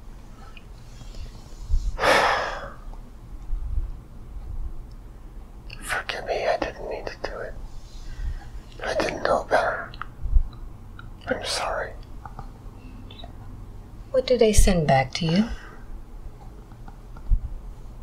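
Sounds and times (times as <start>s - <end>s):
man whispering: 5.7s - 7.6s, 8.7s - 10.0s, 11.2s - 12.1s.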